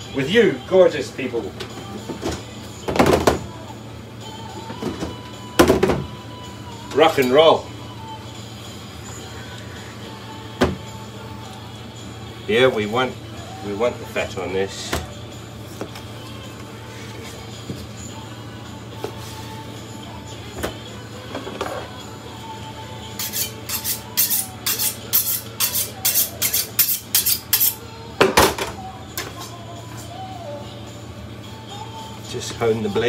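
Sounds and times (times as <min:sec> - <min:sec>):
knife honing on steel: 0:23.2 - 0:27.8.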